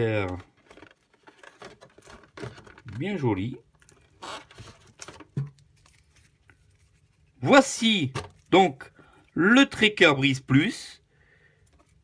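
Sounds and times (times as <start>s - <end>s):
plastic packaging rustling: 0.0s - 8.9s.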